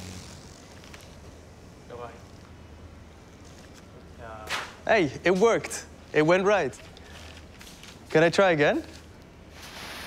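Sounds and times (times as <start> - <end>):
steady low hum: 0.0 - 9.6.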